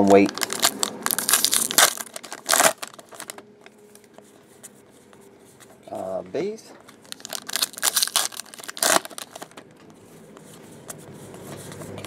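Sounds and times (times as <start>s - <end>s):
foil wrapper tearing and crinkling: 0.0s - 3.4s, 7.0s - 9.6s
cards rustling and clicking: 0.0s - 4.8s, 6.8s - 12.0s.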